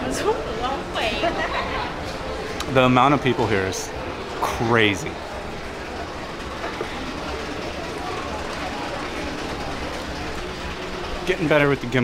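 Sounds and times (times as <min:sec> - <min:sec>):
crowd hubbub: 0:00.0 - 0:12.0
escalator mechanical rumble: 0:03.1 - 0:12.0.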